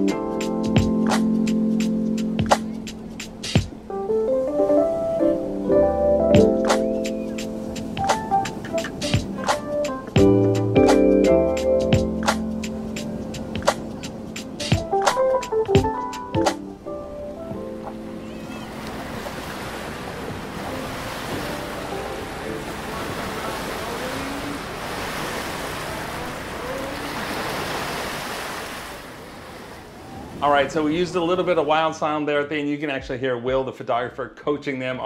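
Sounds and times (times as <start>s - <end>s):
background music with struck notes: 0.0s - 18.1s
ocean surf rushing: 0.0s - 32.0s
faint voice: 18.2s - 18.8s, 22.8s - 24.7s, 25.8s - 27.4s.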